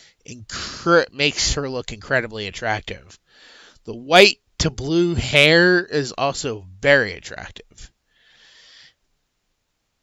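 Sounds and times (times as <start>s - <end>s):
person breathing in: 0.0s - 0.2s, 3.2s - 3.8s, 8.1s - 9.0s.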